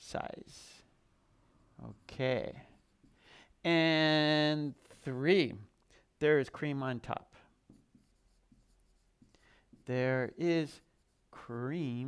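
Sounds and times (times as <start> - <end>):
marker scratching on whiteboard: 1.5 - 3.3, 7.6 - 12.0.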